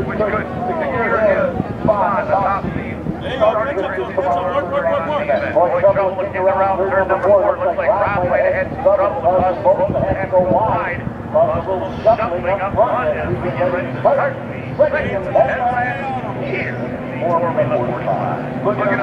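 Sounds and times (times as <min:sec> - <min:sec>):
racing boat engines droning: 0:00.0 - 0:19.0.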